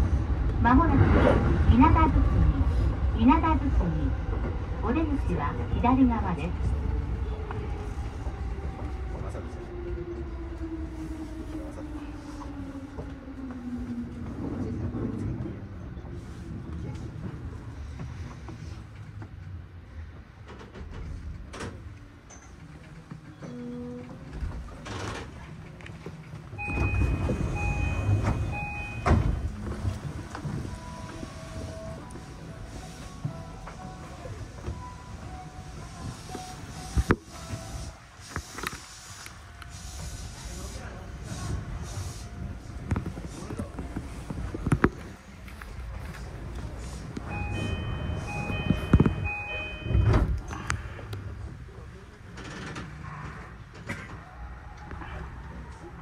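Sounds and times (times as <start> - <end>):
electronic beep: 26.6 - 29.2, 47.3 - 50.1.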